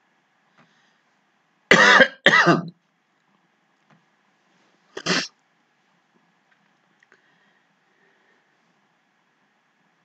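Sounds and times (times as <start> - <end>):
man coughing: 1.7 - 2.7, 5.0 - 5.3.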